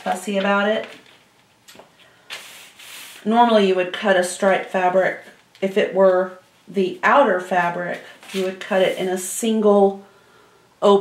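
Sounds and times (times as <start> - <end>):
paper rustling against fabric: 7.9 - 9.3.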